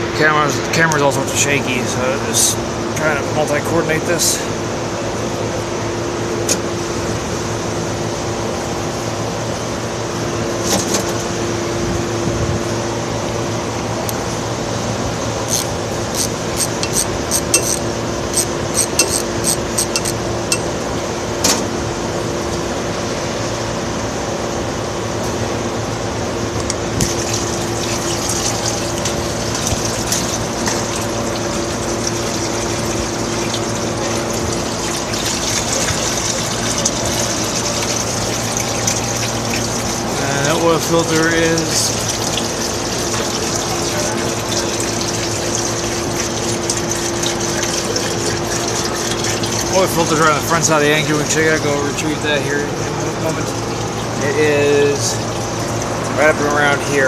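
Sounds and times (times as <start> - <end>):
steady shop hum: 0.0 - 57.0
oil pouring into container: 27.0 - 51.6.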